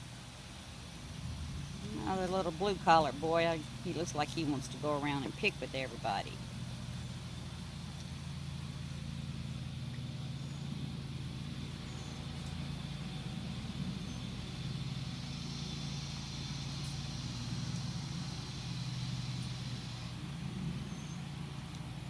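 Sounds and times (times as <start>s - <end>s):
low motor hum: 0.0s - 22.0s.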